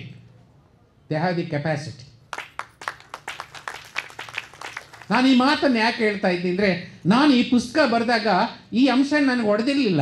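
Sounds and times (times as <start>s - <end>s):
sparse audience applause: 2.3s - 5.4s.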